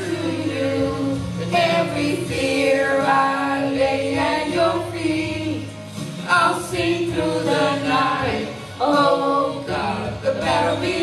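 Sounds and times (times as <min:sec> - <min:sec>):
group of voices singing: 0:00.0 - 0:11.0.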